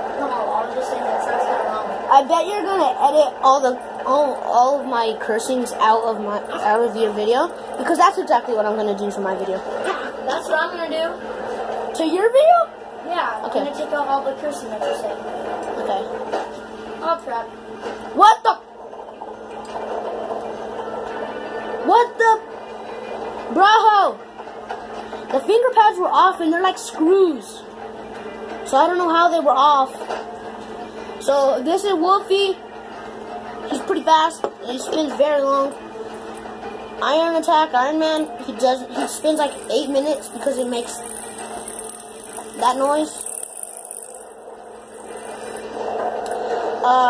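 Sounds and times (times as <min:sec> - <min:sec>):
fidget spinner whirring: 0:00.0 - 0:47.0.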